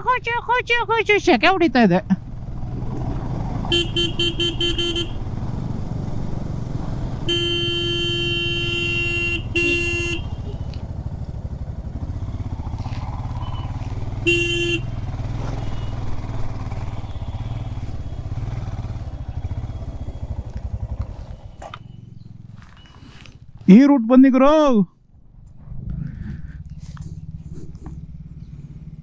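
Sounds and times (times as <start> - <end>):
motorcycle engine running: 0.0 - 23.9, 25.0 - 29.0
short horn honks: 3.7 - 5.2, 7.3 - 10.7, 13.6 - 20.5.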